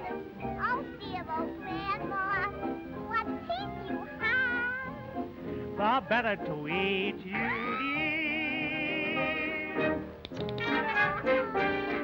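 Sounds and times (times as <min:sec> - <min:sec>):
high squeaky singing voice: 0:07.2 - 0:09.8.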